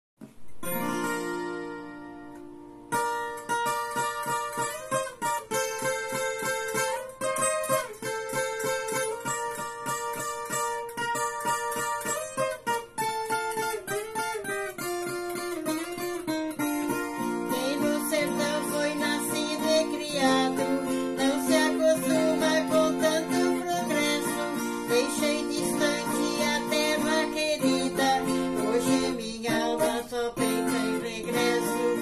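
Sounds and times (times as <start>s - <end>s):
fingerpicked folk guitar: 0.2s - 32.0s.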